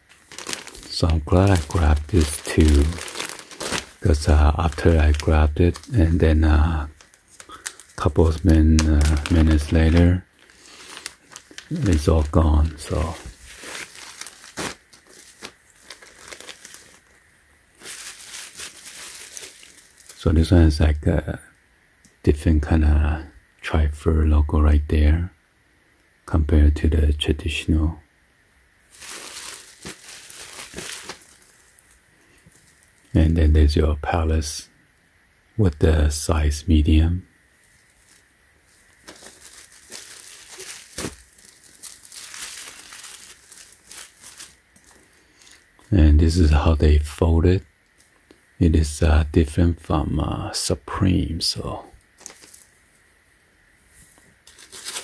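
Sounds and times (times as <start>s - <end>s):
plastic bags crinkling: 0.0s - 20.3s, 28.9s - 33.1s, 37.7s - 45.6s, 52.2s - 52.7s, 54.4s - 55.0s.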